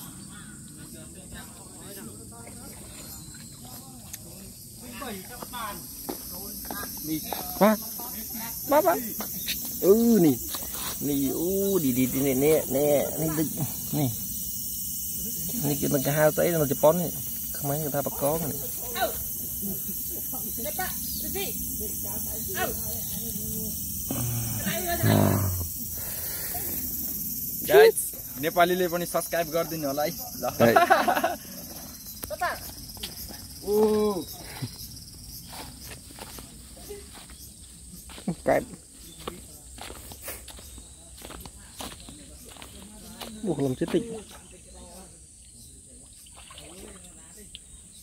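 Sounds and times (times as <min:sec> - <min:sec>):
insects chirping: 0:00.0 - 0:48.0
soft voices talking: 0:15.1 - 0:30.7.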